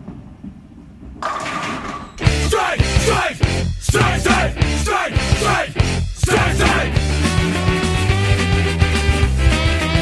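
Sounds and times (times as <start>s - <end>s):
bowling ball rolling on wooden lane: 0.0s - 2.2s.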